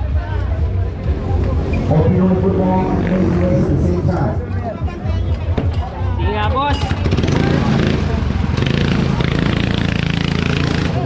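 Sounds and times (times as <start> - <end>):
go-kart engine buzzing: 6.8 - 11.0.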